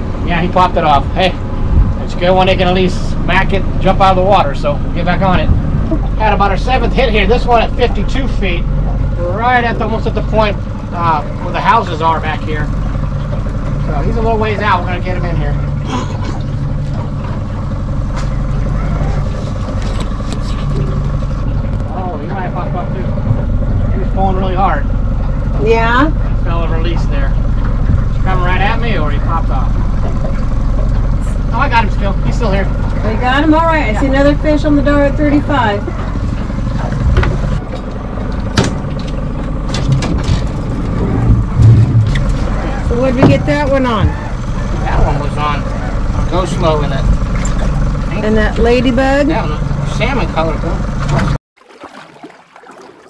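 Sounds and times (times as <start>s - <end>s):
outboard motor running: 0.0s - 53.0s.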